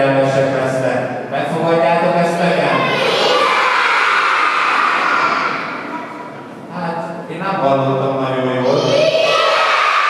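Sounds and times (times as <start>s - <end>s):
children shouting together: 2.6s - 6.4s, 8.6s - 10.0s.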